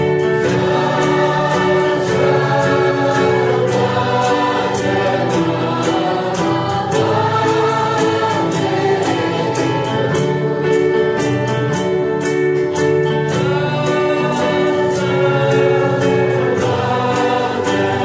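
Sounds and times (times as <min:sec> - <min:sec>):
gospel choir singing: 0:00.0 - 0:18.0
instrumental accompaniment with steady beat: 0:00.0 - 0:18.0.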